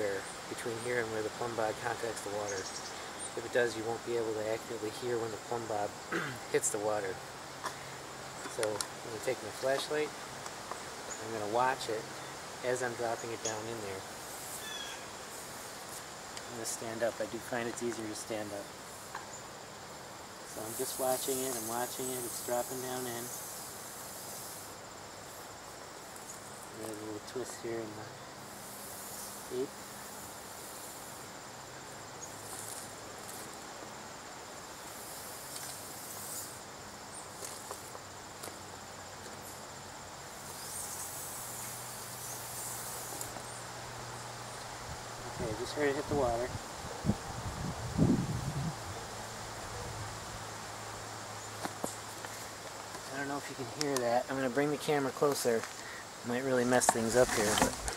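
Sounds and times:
insects chirping and trilling: 0.0 - 57.9
rapid insect pulsing: 0.0 - 57.9.

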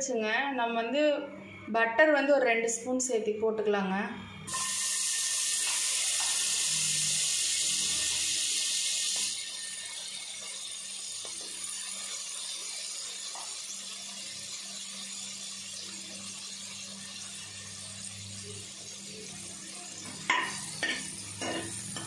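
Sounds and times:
butter sizzling in a pan: 4.5 - 22.0.

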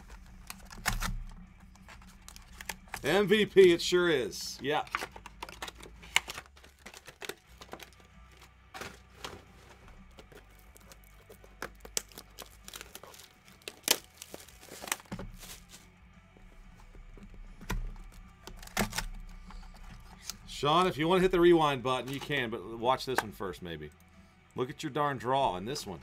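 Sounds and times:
card packaging handling noise: 0.0 - 20.5, 22.0 - 22.4.

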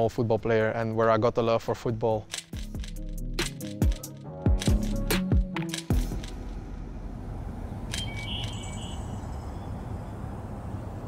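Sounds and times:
bird chirps: 8.0 - 10.2.

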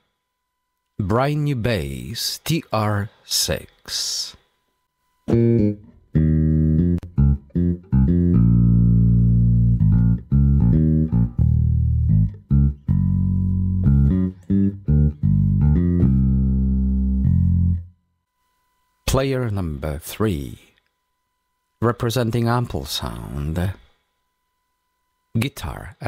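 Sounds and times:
electric bass line: 5.3 - 18.0.

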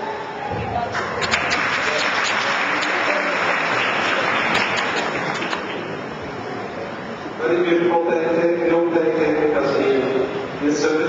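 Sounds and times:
audience applauding: 0.8 - 6.1.

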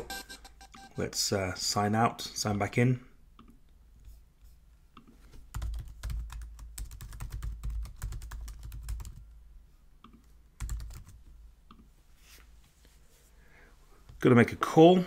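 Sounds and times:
computer keyboard typing: 5.5 - 9.2, 10.1 - 11.2.

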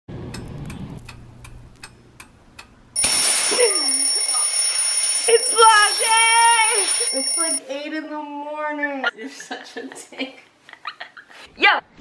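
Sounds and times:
clock ticking: 3.9 - 7.6.

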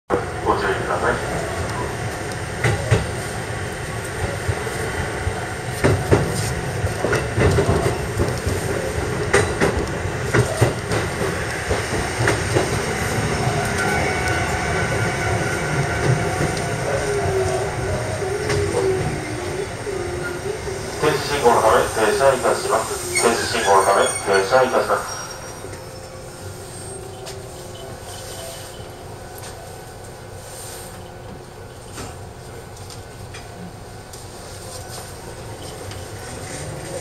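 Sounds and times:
train wheels clicking over rail joints: 5.8 - 13.8
train wheels squealing: 23.0 - 29.1.

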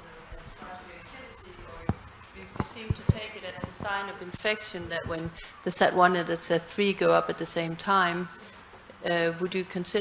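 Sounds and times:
dull thumps: 1.8 - 5.4.

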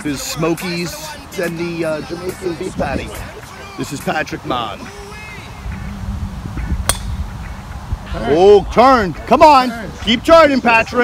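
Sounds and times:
low rumble: 5.4 - 8.1
golf club striking ball: 6.6 - 7.3.

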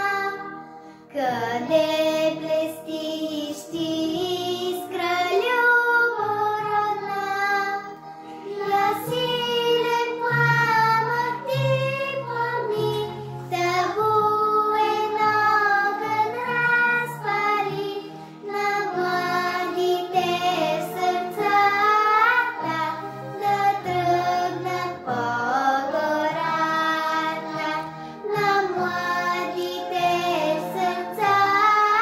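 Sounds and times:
girl singing slow song: 0.0 - 32.0.

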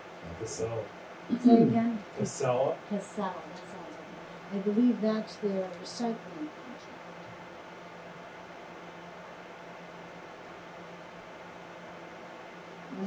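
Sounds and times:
faint low hum: 0.0 - 13.0
steady hiss: 0.0 - 13.0.

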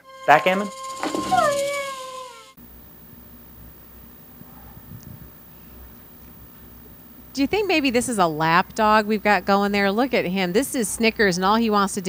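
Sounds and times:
dog howling: 0.0 - 2.6.

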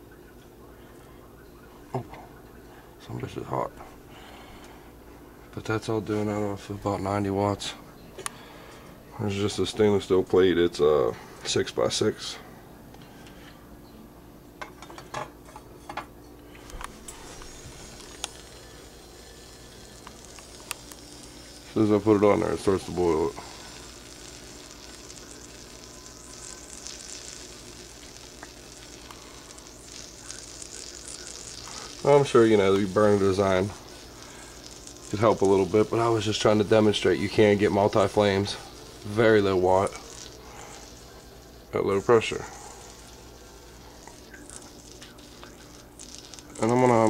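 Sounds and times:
low steady hum: 0.0 - 47.0
water sizzling on hot plate: 16.6 - 47.0.

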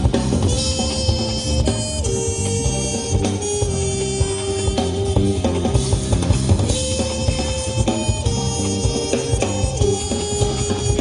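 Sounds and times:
drum beat: 0.0 - 11.0
jazz band playing: 0.0 - 11.0.

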